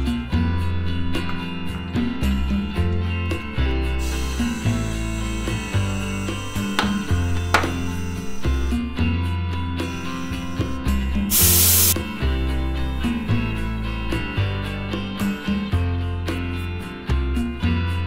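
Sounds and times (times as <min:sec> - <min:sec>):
background guitar music: 0:00.0 - 0:18.0
compressed air hissing: 0:04.0 - 0:08.7, 0:11.3 - 0:12.0.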